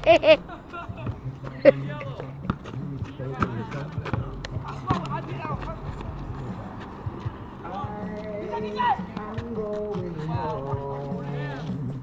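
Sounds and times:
feet running on pavement: 0:00.4 - 0:12.0.

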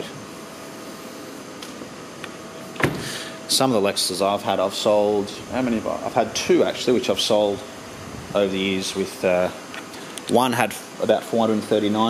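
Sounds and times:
faint steady hum: 0:00.0 - 0:12.0
fan whirring: 0:00.0 - 0:12.0.

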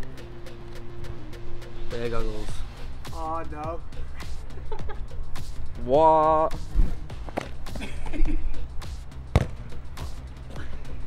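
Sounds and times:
background music: 0:00.0 - 0:11.0
football kick: 0:09.3 - 0:09.7.

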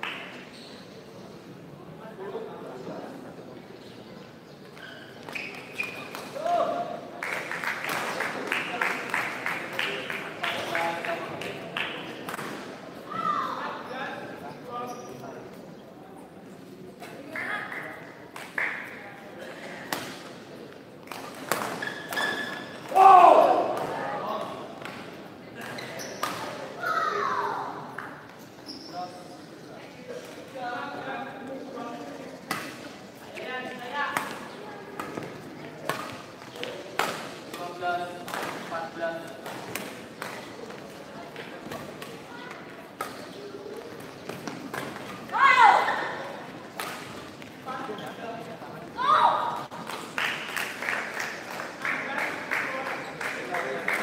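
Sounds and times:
loud shouts: 0:13.1 - 0:13.7, 0:22.9 - 0:23.9, 0:26.8 - 0:27.8, 0:45.3 - 0:46.2, 0:49.0 - 0:49.6.

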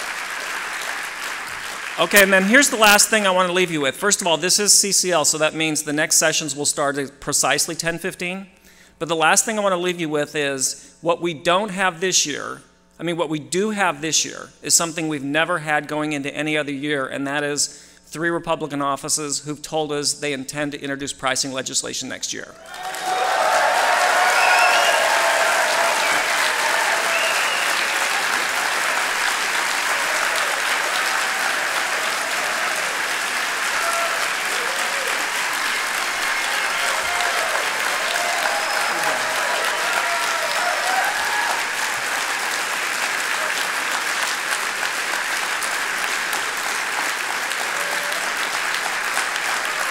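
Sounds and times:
audience applauding: 0:00.0 - 0:03.2, 0:22.6 - 0:49.9
people cheering and calling: 0:22.6 - 0:44.0, 0:47.5 - 0:48.5.

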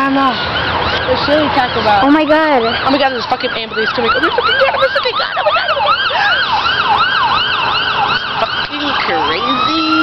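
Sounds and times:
ambulance siren: 0:00.0 - 0:10.0.

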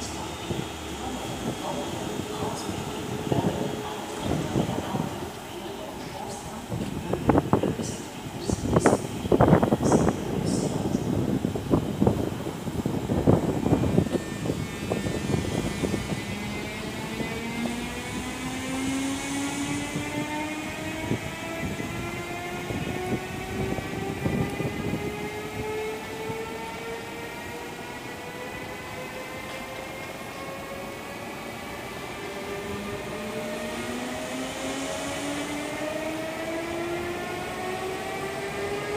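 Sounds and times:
electric locomotive whine rising: 0:00.0 - 0:38.9.

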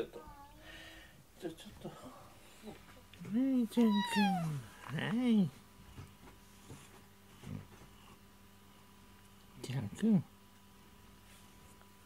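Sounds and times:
cat low vocal sound: 0:03.8 - 0:04.7.

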